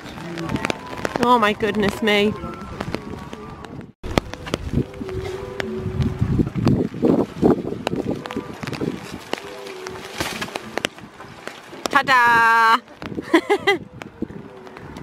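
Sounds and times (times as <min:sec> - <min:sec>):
tree branches rustling and scraping: 0:00.0 - 0:12.0.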